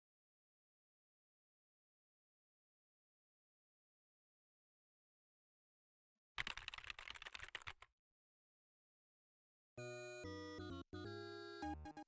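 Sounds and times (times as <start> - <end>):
typing on keyboard: 6.4 - 7.9.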